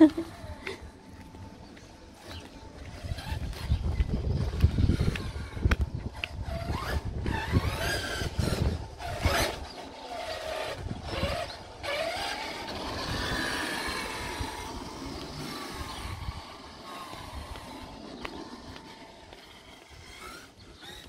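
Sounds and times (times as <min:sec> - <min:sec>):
toy truck motor whining: 0:02.2 - 0:21.0
tyres rumbling on concrete: 0:02.9 - 0:21.0.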